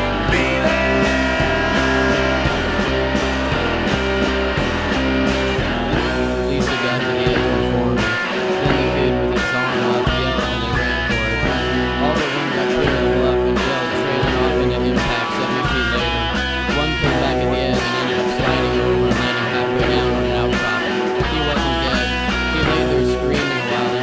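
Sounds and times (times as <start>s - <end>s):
electric guitars: 0.0s - 24.0s
low bass line: 0.0s - 24.0s.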